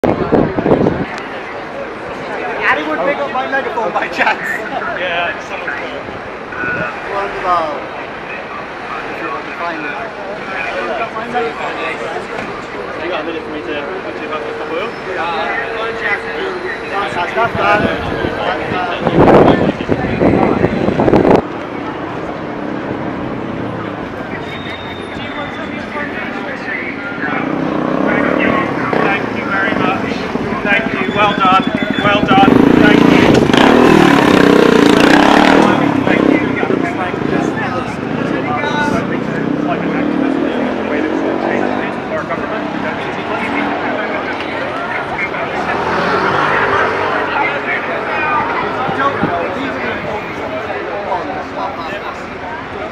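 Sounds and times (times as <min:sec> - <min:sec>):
people talking: 0:00.0 - 0:52.9
road traffic: 0:00.0 - 0:52.9.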